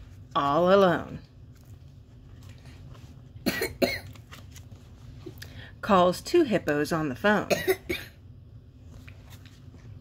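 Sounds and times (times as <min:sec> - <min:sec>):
person coughing: 0:03.4 - 0:04.2, 0:07.5 - 0:08.2.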